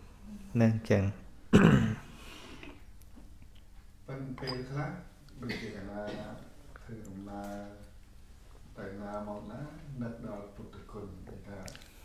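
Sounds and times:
man clearing his throat: 1.5 - 2.1, 5.4 - 6.5.

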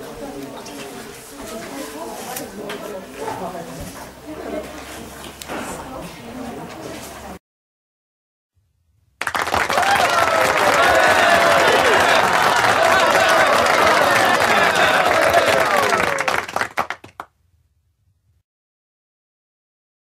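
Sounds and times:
audience applauding: 9.2 - 17.3
voices cheering and calling out: 9.7 - 16.5.

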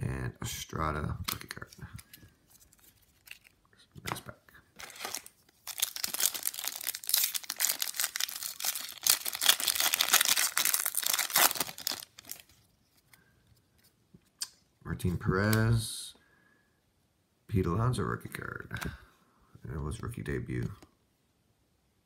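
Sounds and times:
foil wrapper tearing and crinkling: 2.6 - 3.6, 4.8 - 12.5.

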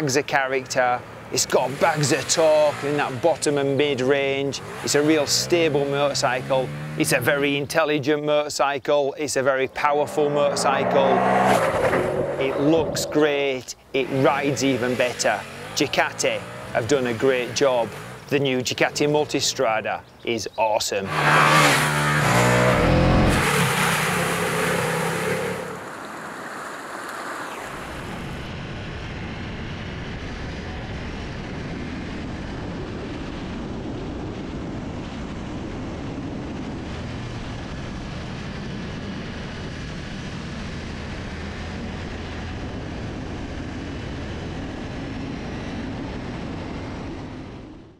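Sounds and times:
motorcycle engine drone: 0.0 - 8.4, 9.2 - 20.3, 21.0 - 47.9
wind noise: 10.2 - 13.6, 25.8 - 47.9.

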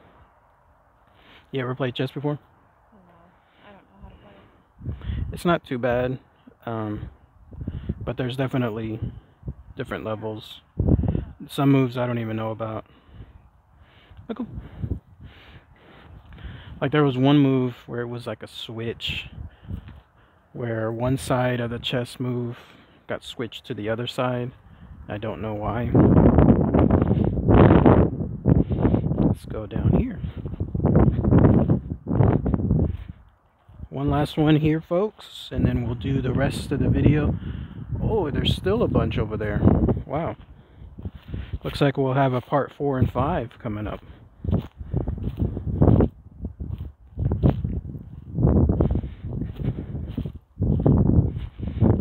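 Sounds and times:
wind buffeting microphone: 3.9 - 17.9, 18.7 - 22.1, 23.8 - 52.0
footsteps crunching dry leaves: 44.0 - 51.6.

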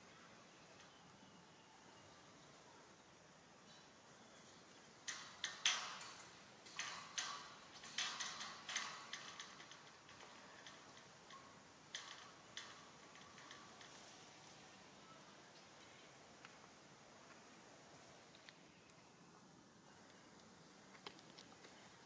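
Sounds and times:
sharp clicks and cracks: 5.0 - 14.0, 18.3 - 19.1, 20.0 - 21.8.

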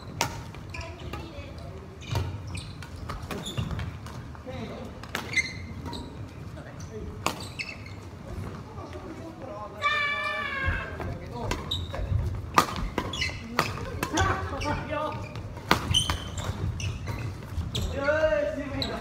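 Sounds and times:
racket hitting shuttlecock: 12.5 - 14.4, 15.6 - 17.2.

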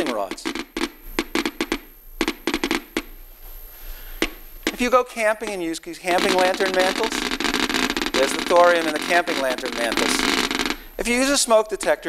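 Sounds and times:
geiger counter clicking: 0.0 - 3.2, 6.2 - 10.9.

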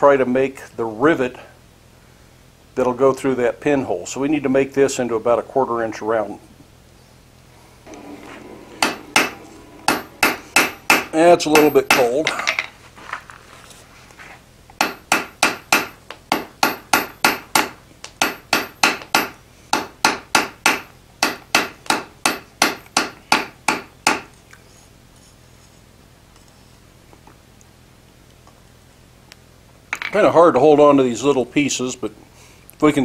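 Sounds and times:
hammer striking iron on anvil: 7.9 - 12.3, 14.8 - 24.3.

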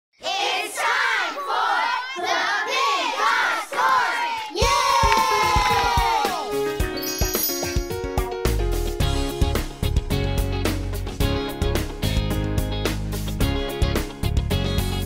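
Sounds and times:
music with chimes and plucked notes: 6.8 - 9.3.

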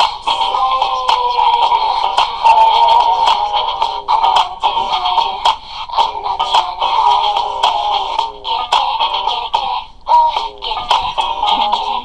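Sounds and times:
music with singing voice: 0.0 - 12.0.

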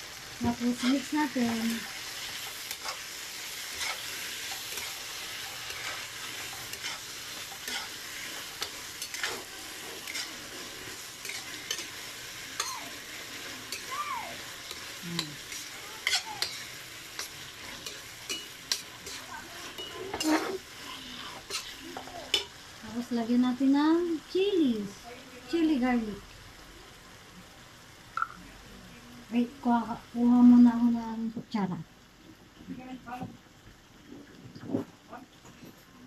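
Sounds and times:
food sizzling in a wok: 0.0 - 36.0
metal spatula scraping a wok: 0.6 - 13.0, 14.6 - 22.5.

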